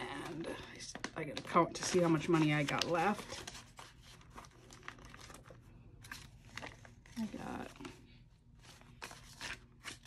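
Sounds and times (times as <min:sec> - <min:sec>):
paper bills rustling: 0:00.0 - 0:10.0.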